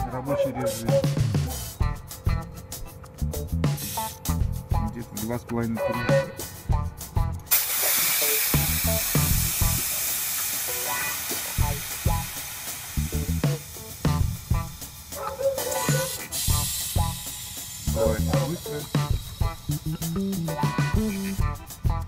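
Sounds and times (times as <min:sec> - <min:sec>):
background music with a beat: 0:00.0 - 0:22.0
compressed air hissing: 0:03.6 - 0:04.4, 0:06.4 - 0:21.8.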